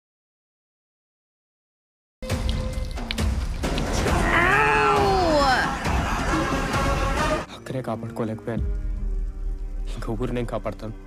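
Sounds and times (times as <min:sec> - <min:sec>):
woman crying wail: 0:04.1 - 0:06.0.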